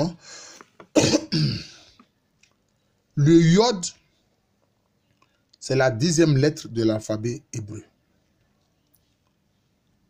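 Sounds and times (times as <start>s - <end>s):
man coughing: 0.9s - 1.8s.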